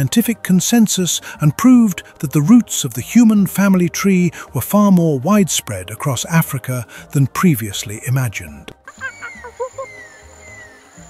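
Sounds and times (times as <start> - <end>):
soft background music: 0.0 - 11.0
slow falling whistles: 9.0 - 11.0.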